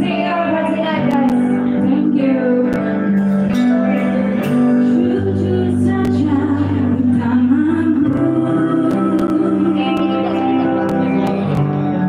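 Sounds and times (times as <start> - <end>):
woman singing into a microphone: 0.0 - 3.6, 4.4 - 11.0
electric bass: 0.0 - 12.0
electric guitar: 0.0 - 12.0.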